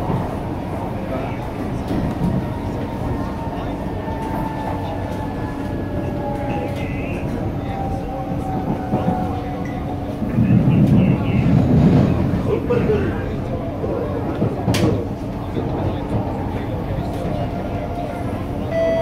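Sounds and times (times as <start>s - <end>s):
train wheels rumbling on rail: 0.0s - 19.0s.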